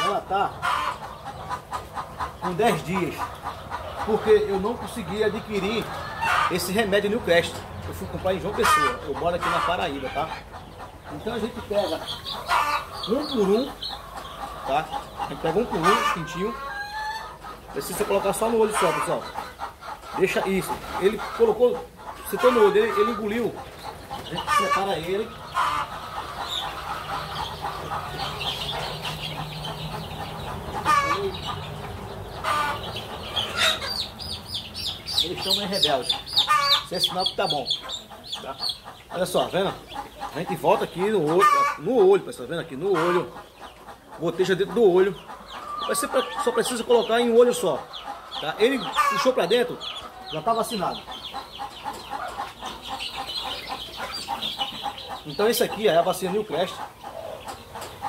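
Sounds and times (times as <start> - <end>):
chicks peeping: 0.0 - 58.0.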